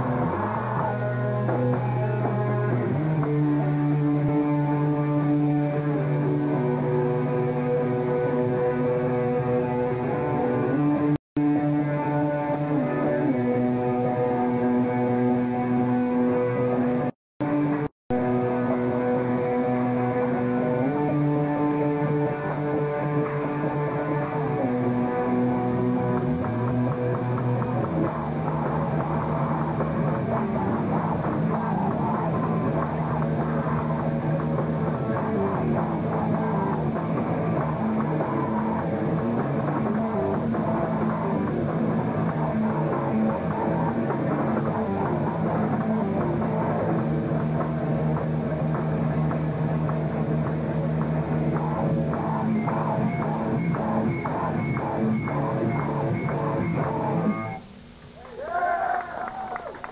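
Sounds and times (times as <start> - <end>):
live hardcore band playing: 0.0 - 57.6
distorted electric guitars: 0.0 - 59.9
drums: 0.0 - 59.9.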